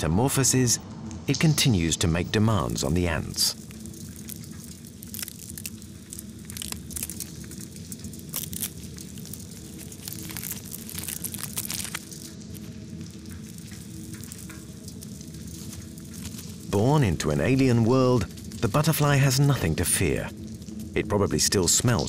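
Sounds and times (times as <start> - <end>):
steady low hum: 0.0 - 22.0
pupa crackling and clicking: 3.5 - 16.7.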